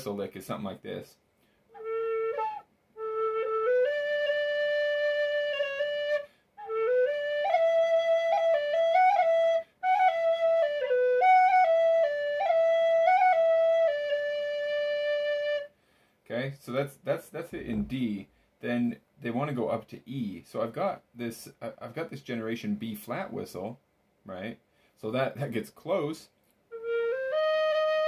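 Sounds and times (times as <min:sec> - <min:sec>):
penny whistle melody: 0:01.8 - 0:15.7, 0:26.7 - 0:28.0.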